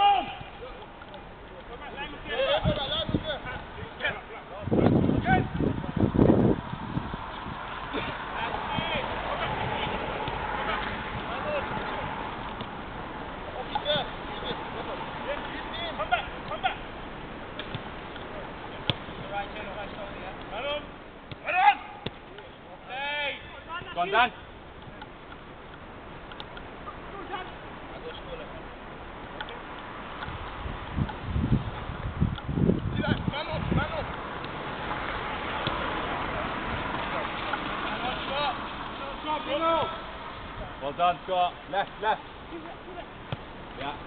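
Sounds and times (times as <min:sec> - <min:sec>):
person shouting: 0:00.0 - 0:00.5, 0:21.4 - 0:22.0
footballers shouting: 0:00.0 - 0:01.0, 0:13.2 - 0:24.5
crowd background noise: 0:00.0 - 0:44.0
ball being kicked: 0:17.6 - 0:19.3, 0:21.3 - 0:22.6, 0:35.6 - 0:35.9, 0:43.3 - 0:43.5.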